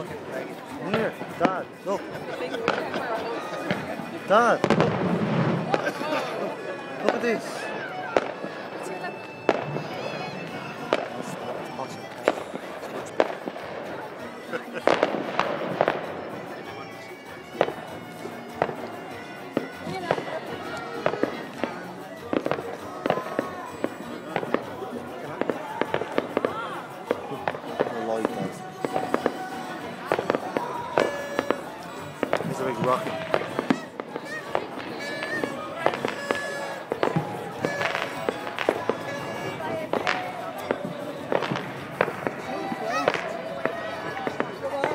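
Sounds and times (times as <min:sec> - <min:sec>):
music: 0:00.0 - 0:44.9
voices: 0:00.0 - 0:44.9
fireworks bangs: 0:04.6 - 0:06.1, 0:07.0 - 0:16.8, 0:25.4 - 0:44.9.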